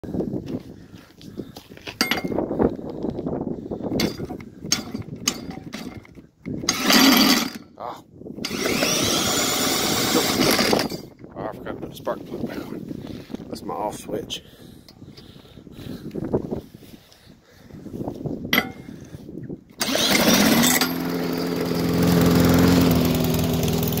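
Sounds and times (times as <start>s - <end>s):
metal clinks and knocks: 1.9s - 2.4s, 3.9s - 7.7s, 18.5s - 18.9s, 20.4s - 21.8s
drill spinning engine over: 4.8s - 7.7s, 8.4s - 11.2s, 19.7s - 24.0s.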